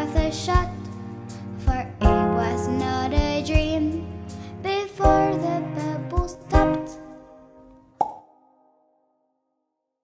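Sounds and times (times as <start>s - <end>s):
short pop: 8.0s - 8.3s.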